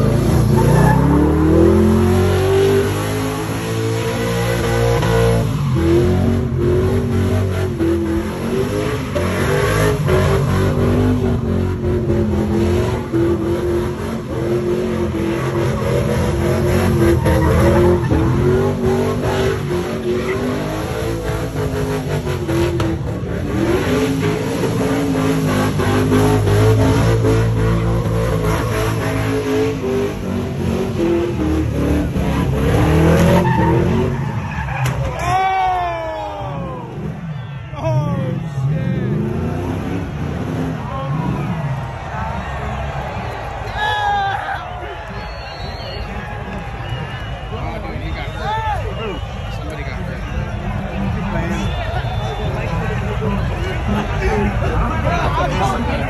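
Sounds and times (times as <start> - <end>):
truck engine revving: 0.0 - 35.3, 38.3 - 43.7, 44.3 - 56.0
tyres squealing on pavement: 15.3 - 21.6, 32.6 - 35.6, 44.6 - 50.6.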